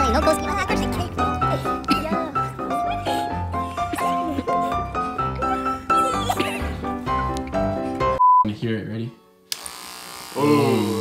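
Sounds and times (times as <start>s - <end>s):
hair clipper switch click: 9.5s - 9.8s
electric hair clipper buzzing: 9.5s - 11.0s.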